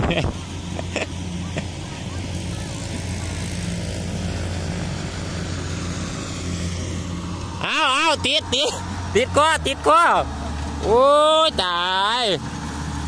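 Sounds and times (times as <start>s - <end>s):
combine harvester engine humming: 0.0s - 13.0s.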